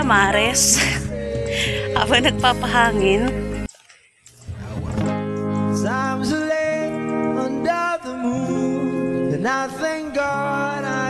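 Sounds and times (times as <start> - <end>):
person singing: 0.0 - 3.6, 5.8 - 11.0
held instrument chords: 0.0 - 3.7.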